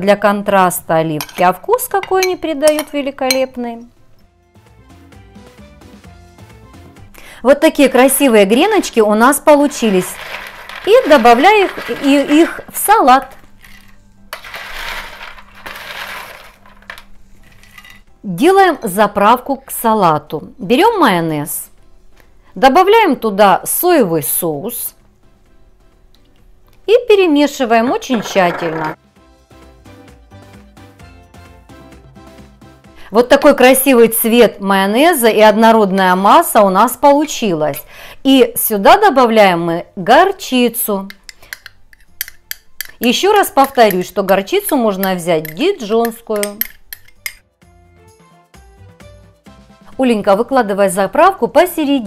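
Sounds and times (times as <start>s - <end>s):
spoon scraping glass bowl: 9.6s - 12.7s, 13.6s - 18.0s, 41.1s - 47.4s
croutons clattering onto glass plate: 9.7s - 12.7s, 13.3s - 18.1s, 28.0s - 29.0s.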